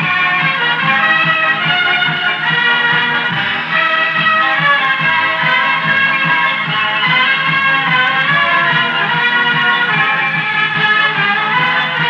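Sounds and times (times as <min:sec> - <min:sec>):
orchestra playing: 0:00.0 - 0:12.0.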